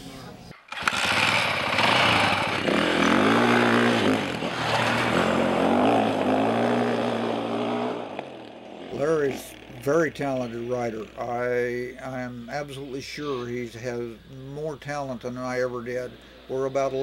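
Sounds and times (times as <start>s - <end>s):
dirt bike engine revving: 0.7s - 11.4s.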